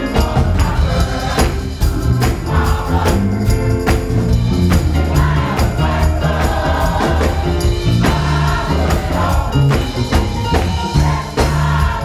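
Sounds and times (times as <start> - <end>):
gospel choir singing: 0.0 - 12.0
low bass notes: 0.0 - 12.0
percussion beat: 0.0 - 12.0.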